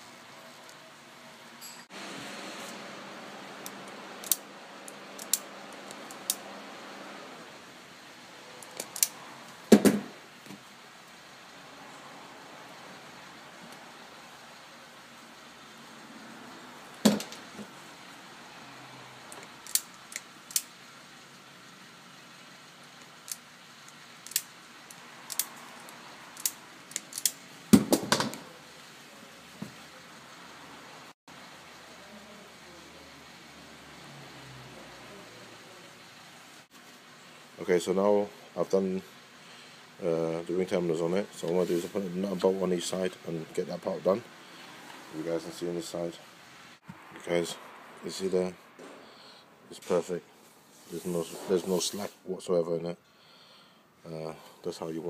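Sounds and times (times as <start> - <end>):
hand tool clicks: 3.6 - 6.4, 8.6 - 9.2, 19.4 - 20.7, 23.3 - 24.5, 25.3 - 25.6, 26.4 - 27.4.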